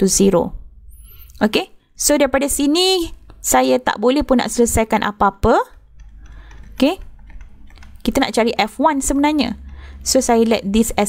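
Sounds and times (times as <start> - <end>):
steady low hum: 0.0 - 11.0
stylus tapping on tablet screen: 5.4 - 11.0.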